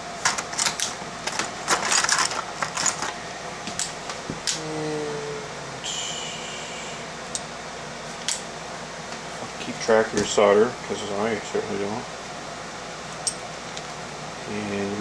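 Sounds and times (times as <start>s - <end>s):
faint hum: 0.0s - 15.0s
metal tools clicking and rattling: 0.2s - 3.2s.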